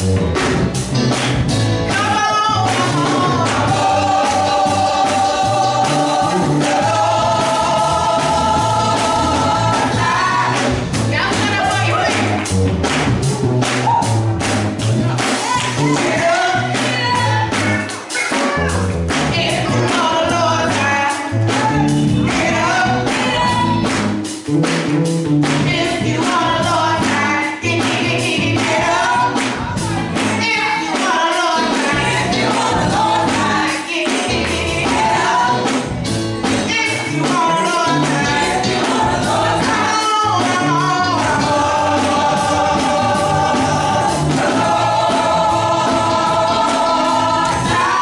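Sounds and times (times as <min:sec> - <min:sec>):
low bass accompaniment: 0:00.0 - 0:17.9, 0:18.6 - 0:30.4, 0:31.9 - 0:33.6, 0:38.0 - 0:48.0
hand claps: 0:00.4 - 0:02.1, 0:11.4 - 0:16.2, 0:16.8 - 0:19.3, 0:23.1 - 0:25.7
female vocal group singing: 0:01.9 - 0:12.3, 0:15.4 - 0:17.9, 0:19.3 - 0:23.8, 0:25.7 - 0:29.6, 0:30.2 - 0:35.7, 0:36.7 - 0:48.0.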